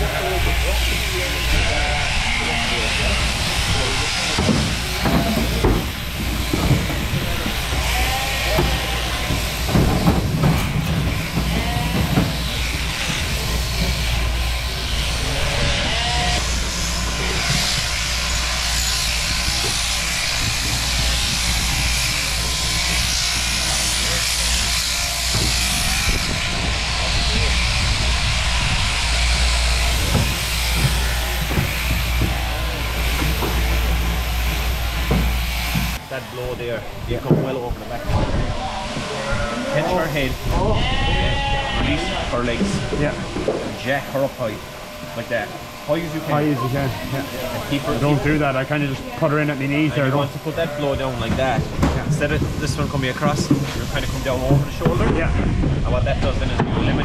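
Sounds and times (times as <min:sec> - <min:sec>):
electric shears humming: 0:00.0 - 0:57.0
shears cutting fleece: 0:00.0 - 0:57.0.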